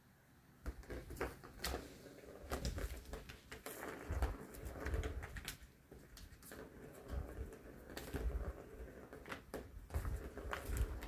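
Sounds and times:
ball rolling on plastic track: 0:00.7 - 0:11.0.

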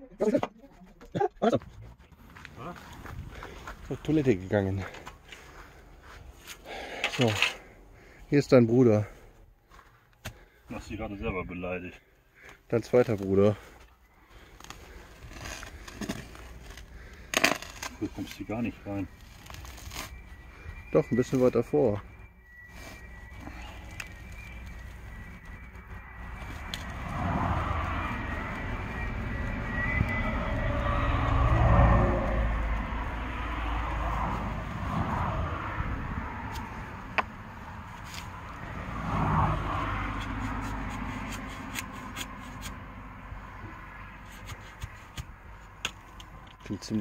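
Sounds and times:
low rumble: 0:22.0 - 0:37.8.

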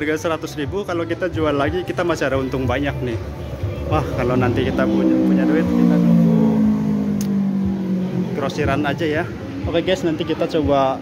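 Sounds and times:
vehicle engine running: 0:02.2 - 0:11.0.

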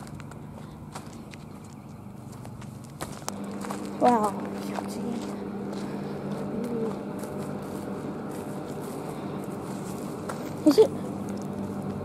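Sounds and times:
footsteps on gritty pavement: 0:00.0 - 0:12.0
low hum: 0:00.0 - 0:12.0.

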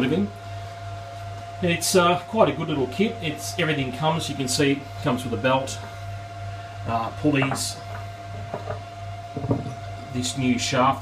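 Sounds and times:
steady low hum: 0:00.0 - 0:11.0
metal parts knocking on tabletop: 0:08.4 - 0:08.8, 0:09.4 - 0:09.8.

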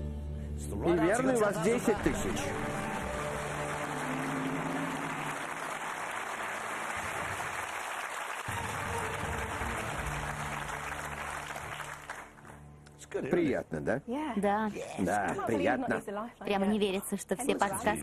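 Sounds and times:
studio audience applauding: 0:01.2 - 0:12.9.

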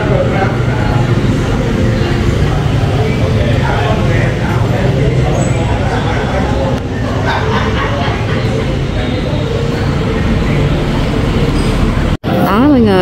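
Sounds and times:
indistinct voices: 0:00.0 - 0:13.0
rumble of motor vehicles: 0:00.0 - 0:13.0.

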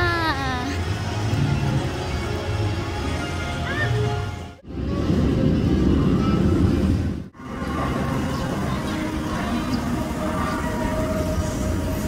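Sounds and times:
roller coaster rumbling on track: 0:00.0 - 0:12.0.

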